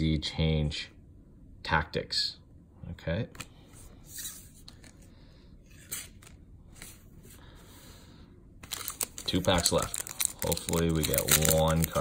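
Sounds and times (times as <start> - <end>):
trading cards handling: 5.7 - 7.0, 8.6 - 12.0
foil wrapper crinkling: 8.6 - 12.0.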